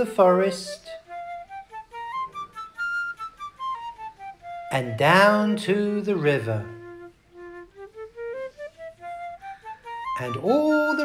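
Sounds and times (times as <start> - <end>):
flute playing rising notes: 0.0 - 5.5, 6.2 - 11.0.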